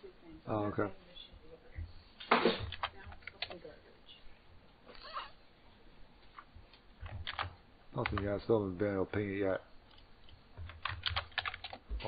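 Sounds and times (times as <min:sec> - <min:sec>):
computer keyboard keystrokes: 0:02.6 - 0:03.6, 0:06.7 - 0:08.4, 0:09.9 - 0:11.9.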